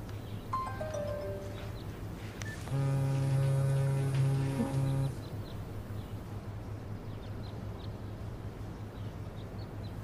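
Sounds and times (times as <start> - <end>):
faint low hum: 0.0 - 10.0
loud low buzzing tone: 2.7 - 5.2.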